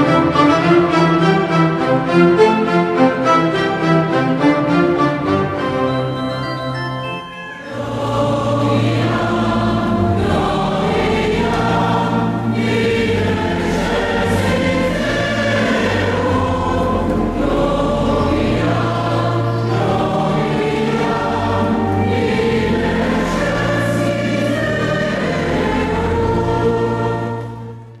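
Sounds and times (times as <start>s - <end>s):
church choir singing a hymn: 0.0s - 6.7s, 7.6s - 28.0s.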